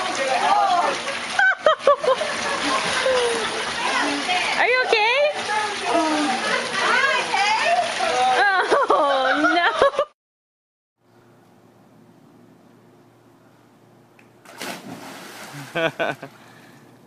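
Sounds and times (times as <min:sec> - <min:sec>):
water splashing in a pool: 0:00.0 - 0:10.0, 0:14.4 - 0:16.9.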